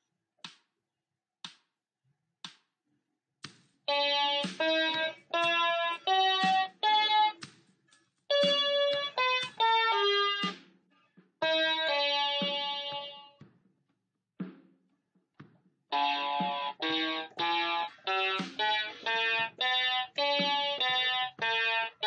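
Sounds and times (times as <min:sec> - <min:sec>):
electronic keyboard notes: 0:03.9 - 0:07.5, 0:08.3 - 0:10.6, 0:11.4 - 0:13.4, 0:15.9 - 0:22.0.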